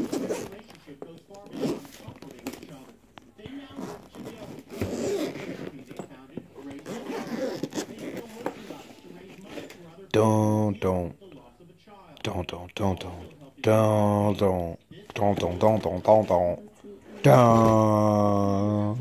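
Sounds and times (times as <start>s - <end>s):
zipper being pulled open: 0.0s - 0.6s, 1.5s - 2.3s, 3.7s - 6.0s, 6.7s - 8.6s.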